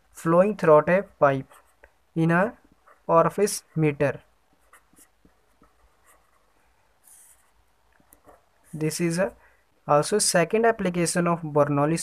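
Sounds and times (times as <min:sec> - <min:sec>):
pen scratching on paper: 0:01.0 - 0:02.0, 0:02.7 - 0:08.9.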